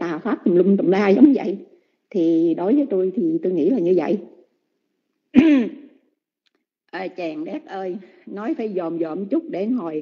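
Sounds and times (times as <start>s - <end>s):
person clearing throat: 5.4s - 6.0s.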